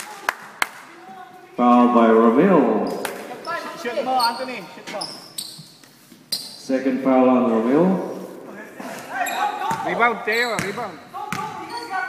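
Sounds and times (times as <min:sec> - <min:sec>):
players' voices: 0:00.0 - 0:05.4, 0:06.6 - 0:12.0
basketball bouncing on gym floor: 0:09.6 - 0:11.9.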